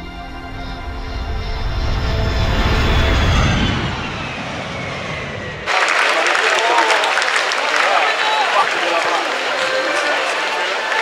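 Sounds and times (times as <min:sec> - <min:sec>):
jet aircraft flying past: 0:00.0 - 0:11.0
arena crowd murmur: 0:05.7 - 0:11.0.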